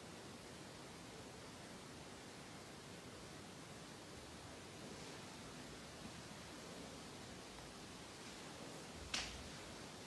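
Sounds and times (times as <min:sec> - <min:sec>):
steady faint hiss: 0:00.0 - 0:10.0.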